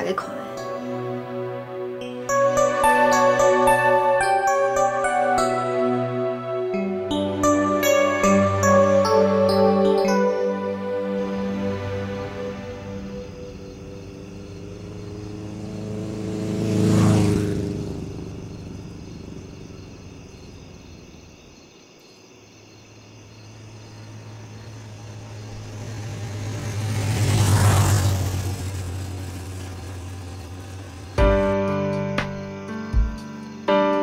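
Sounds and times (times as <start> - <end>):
motorcycle passing by: 0.0 - 21.6, 23.3 - 32.8.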